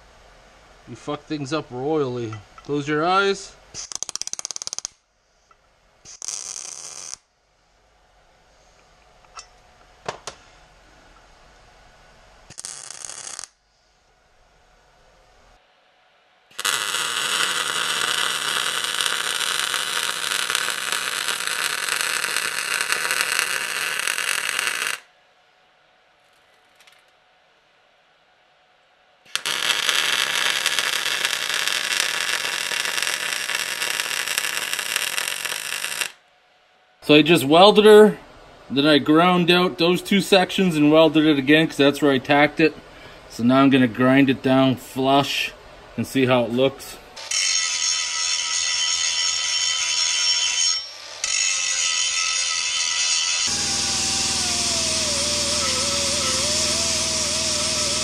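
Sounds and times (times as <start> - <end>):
arc welder crackling hiss: 3.7 - 5.0, 6.0 - 7.3, 12.5 - 13.6, 16.5 - 25.1, 29.3 - 36.2, 51.1 - 58.0.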